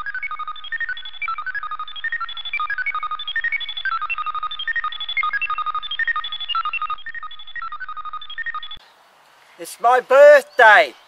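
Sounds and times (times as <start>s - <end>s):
rapid electronic bleeps: 0.0s - 8.8s.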